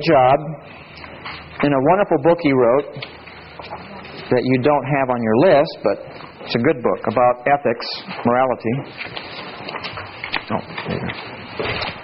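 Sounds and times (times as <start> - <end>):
rustling and handling noise: 8.0 - 12.0.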